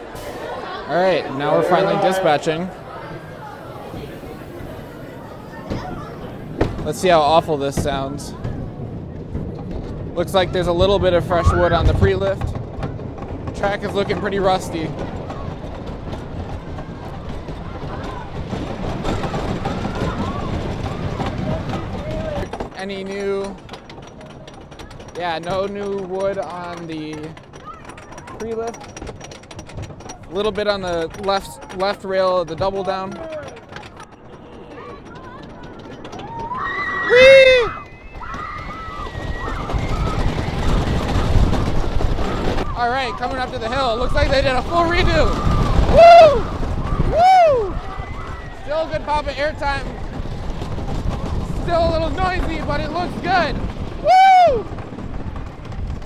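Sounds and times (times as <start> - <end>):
faint voices: 0.0 - 12.7, 13.4 - 29.0, 29.9 - 56.0
roller coaster rumbling and rattling: 0.0 - 56.0.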